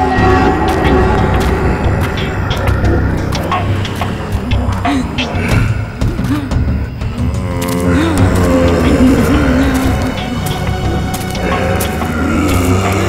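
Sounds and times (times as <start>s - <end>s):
deep sustained low drone: 0.0s - 13.0s.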